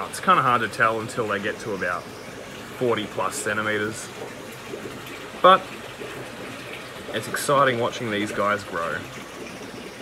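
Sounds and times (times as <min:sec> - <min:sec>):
aquarium water rushing: 0:00.0 - 0:10.0.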